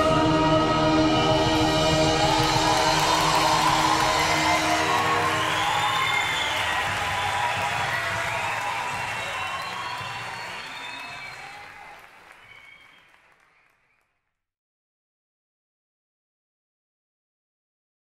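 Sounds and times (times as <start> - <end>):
orchestra and choir chord: 0.0 - 6.2
audience applause and cheering: 0.0 - 14.1
high gliding whistles: 2.2 - 11.8.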